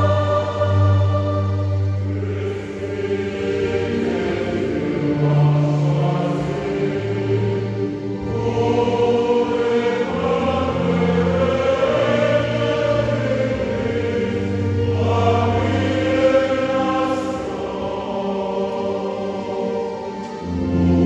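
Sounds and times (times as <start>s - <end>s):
church choir singing a hymn: 0.0s - 21.0s.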